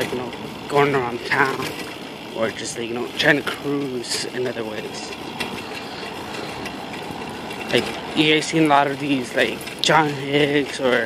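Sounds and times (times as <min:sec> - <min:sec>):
person speaking: 0:00.0 - 0:06.6, 0:07.6 - 0:11.0
wind and road noise: 0:00.0 - 0:11.0.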